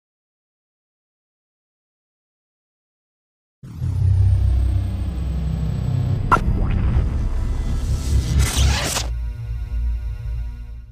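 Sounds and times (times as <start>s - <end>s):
low bass music: 3.6s - 10.9s.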